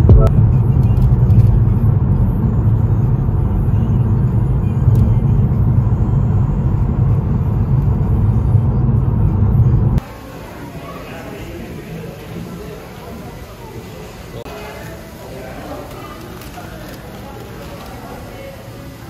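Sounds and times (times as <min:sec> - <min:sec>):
road and engine rumble in car: 0:00.0 - 0:10.1.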